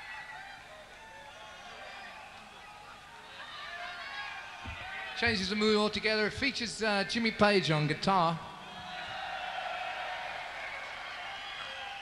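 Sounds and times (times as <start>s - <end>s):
crowd noise and cheering: 0.0s - 12.0s.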